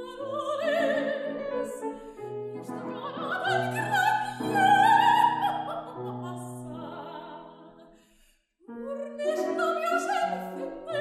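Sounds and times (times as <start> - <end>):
grand piano: 0.0 - 8.0, 8.7 - 11.0
soprano singing: 0.0 - 8.0, 8.7 - 11.0.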